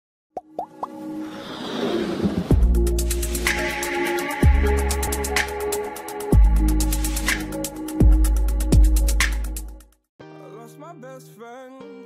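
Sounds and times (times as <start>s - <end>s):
held musical tone: 2.6s - 9.0s.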